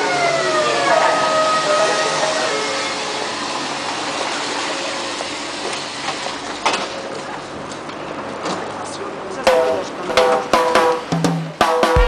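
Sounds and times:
train rolling hiss: 0.0 - 7.2
electric train whine: 0.0 - 11.0.

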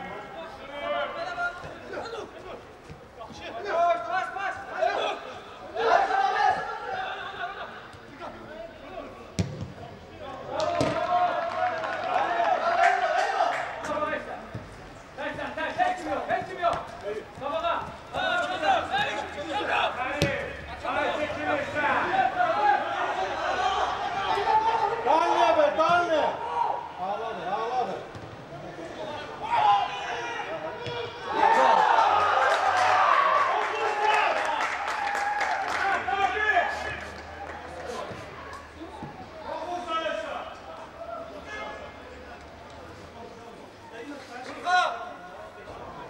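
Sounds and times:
faint outdoor background noise: 0.0 - 46.0
men shouting: 3.6 - 7.8, 17.4 - 26.9
football kicked with thud: 9.4 - 9.8.

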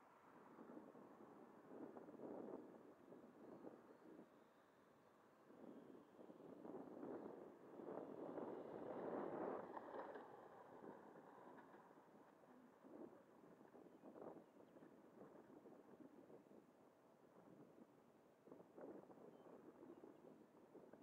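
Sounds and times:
wind buffeting microphone: 0.6 - 4.3, 5.4 - 21.0.

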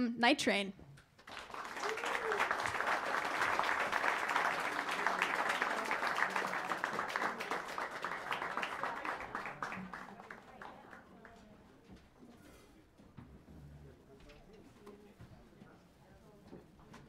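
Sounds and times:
audience applause: 1.2 - 11.3.

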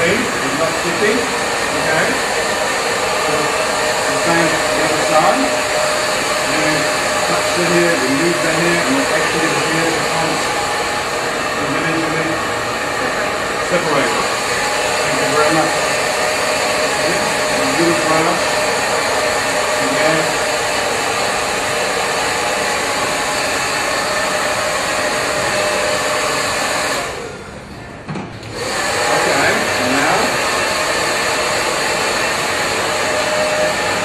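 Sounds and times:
hair dryer blowing: 0.0 - 27.6, 28.4 - 34.0.

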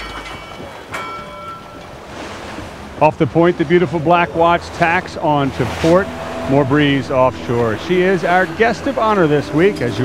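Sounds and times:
buoy bell ringing: 0.0 - 1.9
waves washing: 0.0 - 10.0
wind: 0.0 - 10.0.

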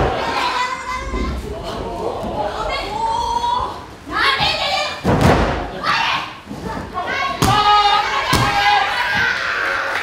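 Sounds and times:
loud shout: 7.1 - 10.0.

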